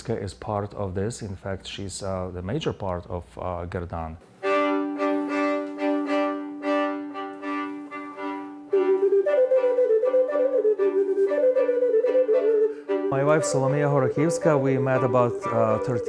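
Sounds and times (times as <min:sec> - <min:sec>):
flute wavering melody: 0:04.4 - 0:16.0
violin bowing short notes: 0:04.4 - 0:16.0.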